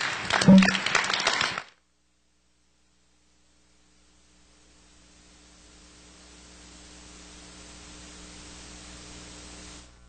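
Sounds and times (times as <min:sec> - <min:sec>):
audience applauding: 0:00.0 - 0:01.8.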